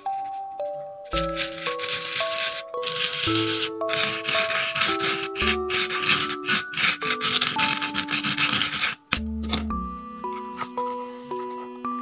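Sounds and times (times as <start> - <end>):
light background music: 0.0 - 12.0
spoon scraping sand: 1.1 - 9.1.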